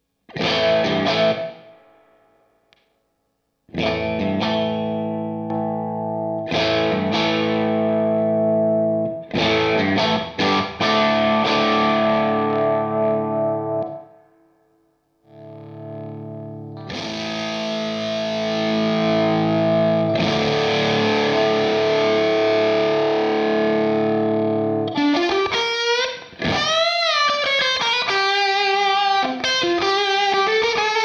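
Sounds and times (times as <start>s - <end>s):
electric guitar chords: 0.0s - 2.8s, 3.7s - 31.0s.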